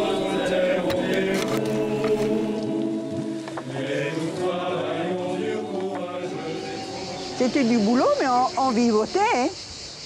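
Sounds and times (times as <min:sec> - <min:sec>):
choir singing held chords: 0:00.0 - 0:09.1.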